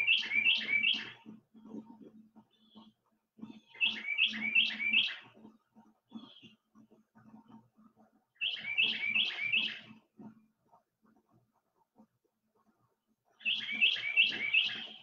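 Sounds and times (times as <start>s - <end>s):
bird singing: 0.0s - 1.4s, 2.4s - 6.7s, 8.3s - 10.0s, 13.4s - 15.0s.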